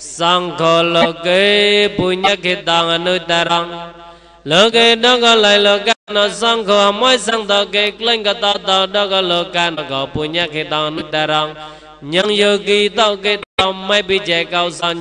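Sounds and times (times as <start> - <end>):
man chanting: 0.0 - 3.9, 4.5 - 15.0.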